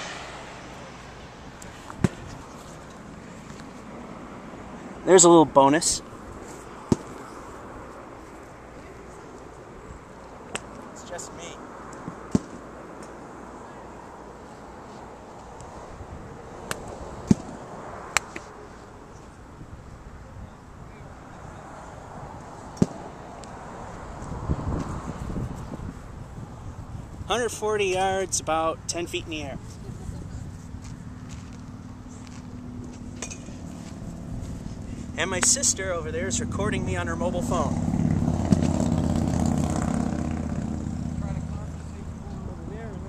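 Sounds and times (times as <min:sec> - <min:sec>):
outdoor background noise: 0:00.0 - 0:43.0.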